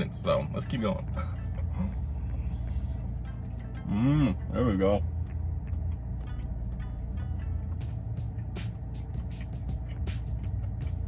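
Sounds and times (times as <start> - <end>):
car cabin low rumble: 0.0 - 11.0
person chewing: 1.8 - 11.0.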